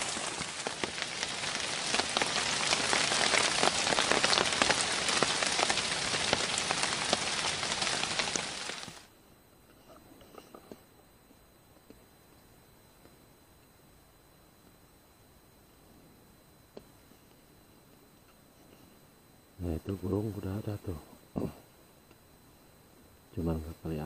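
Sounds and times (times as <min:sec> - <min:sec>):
rain falling on foliage: 0:00.0 - 0:09.1.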